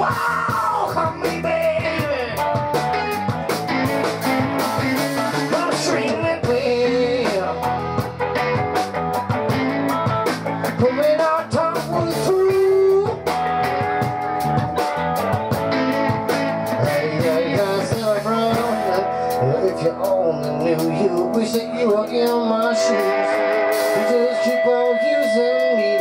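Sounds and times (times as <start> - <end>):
live rock band with electric guitars: 0.0 - 26.0.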